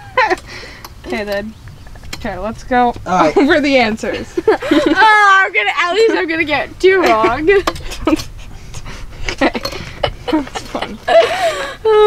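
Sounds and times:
voiced giggle: 4.1s - 5.0s, 7.0s - 12.0s
breathy laughter: 4.2s - 5.0s, 7.1s - 12.0s.

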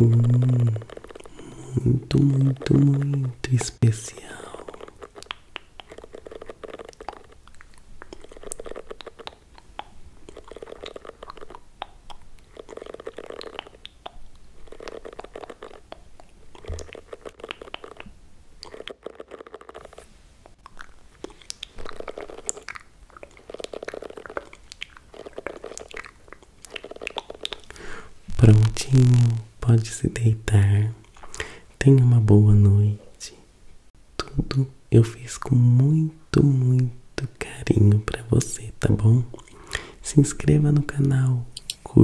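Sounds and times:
hairbrush strokes scratching: 0.0s - 1.6s, 2.2s - 7.4s, 8.1s - 9.4s, 14.5s - 15.8s, 16.6s - 18.0s, 25.1s - 26.1s.

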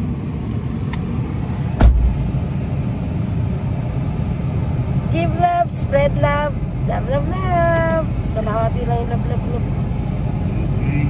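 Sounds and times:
low rumble inside car: 0.0s - 11.0s
sharp thump: 1.8s - 2.4s.

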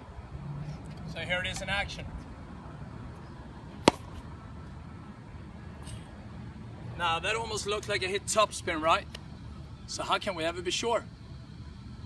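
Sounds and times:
racket frame striking ball: 3.8s - 4.2s.

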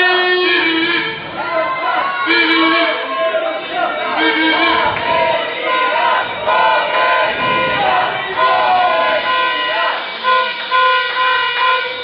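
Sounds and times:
horn short toots: 0.0s - 12.0s.

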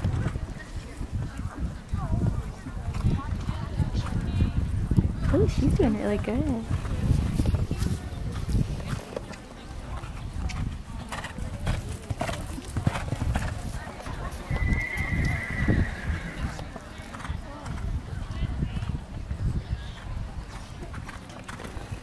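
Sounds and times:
horse hoofbeats on dirt: 0.0s - 22.0s.

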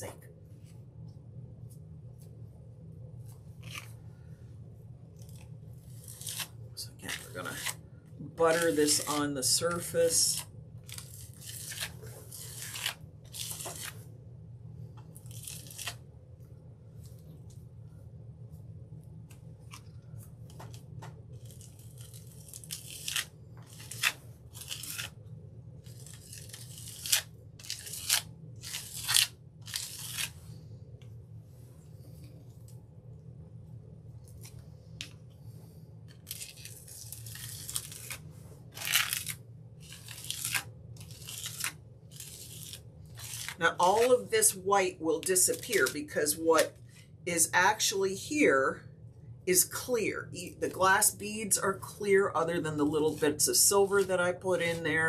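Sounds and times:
steady low hum: 0.0s - 55.0s
gritty scraping strokes: 8.4s - 14.0s, 36.1s - 44.6s.

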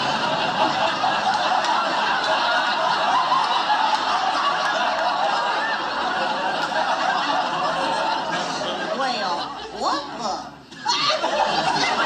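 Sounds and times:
studio audience laughing: 0.0s - 12.0s.

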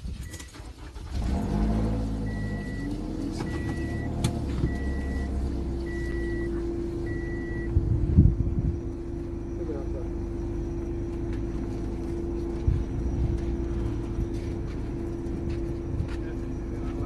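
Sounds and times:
car engine starting and idling: 0.0s - 17.0s
warning chime beeps: 2.2s - 7.7s.

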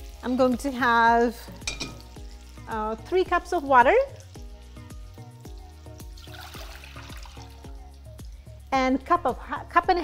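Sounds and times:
music with plucked beat: 0.0s - 8.4s
water pouring into a pot: 0.0s - 8.6s.

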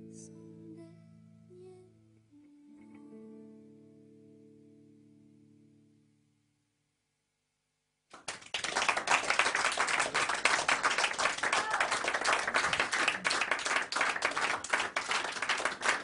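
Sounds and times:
audience applauding: 8.1s - 16.0s.

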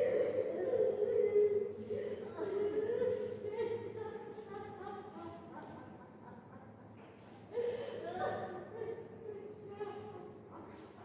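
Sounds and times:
voices singing a slow hymn: 0.0s - 6.3s.

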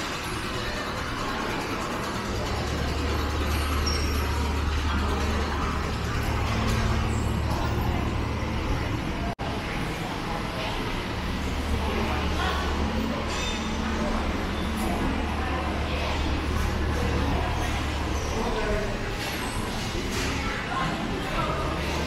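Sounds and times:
background hubbub: 0.0s - 22.0s
low engine rumble: 0.0s - 22.0s.

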